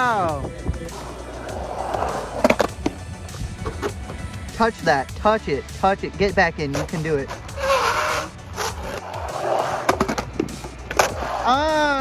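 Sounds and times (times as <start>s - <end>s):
skateboard wheels rolling on concrete: 0.0s - 12.0s
skateboard clacks: 1.0s - 3.0s, 6.7s - 12.0s.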